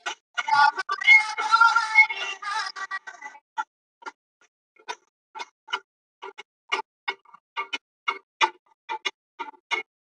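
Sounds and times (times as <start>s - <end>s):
dance song with singing: 0.4s - 3.4s.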